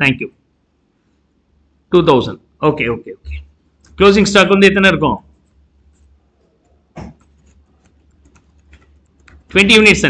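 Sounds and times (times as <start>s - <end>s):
low steady hum: 0.0s - 10.0s
stylus tapping pen tablet: 6.9s - 9.5s.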